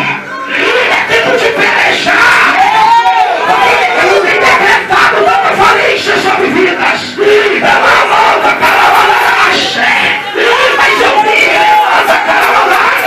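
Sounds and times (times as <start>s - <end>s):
crowd shouting: 0.0s - 13.0s.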